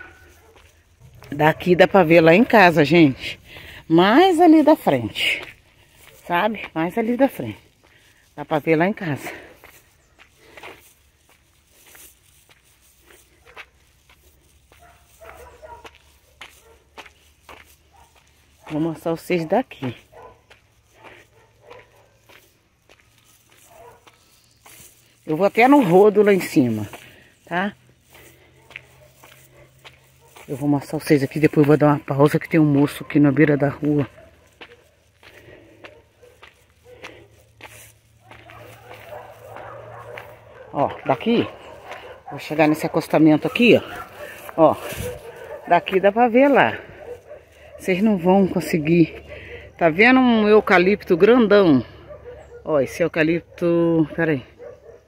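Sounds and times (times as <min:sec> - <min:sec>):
footsteps on dirt road: 0:00.0 - 0:55.0.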